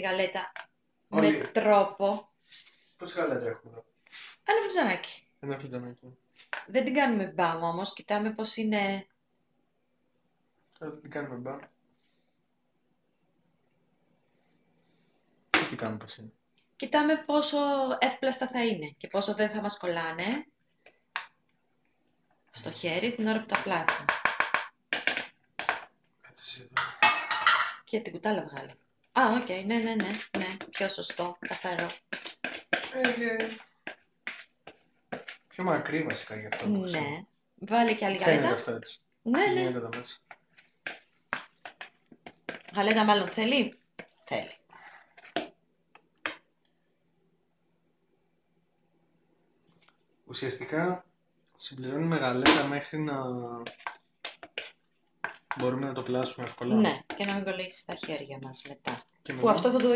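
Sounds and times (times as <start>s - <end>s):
person speaking: 1.1s - 1.7s, 28.4s - 34.5s, 35.2s - 37.2s, 37.9s - 41.0s, 55.4s - 59.9s
spoon clinking and scraping bowl: 26.8s - 27.8s, 29.7s - 36.7s, 40.2s - 44.4s, 53.6s - 59.9s.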